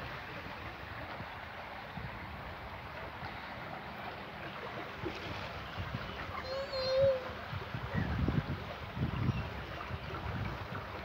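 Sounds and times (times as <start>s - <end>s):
rushing outdoor background noise: 0.0s - 11.0s.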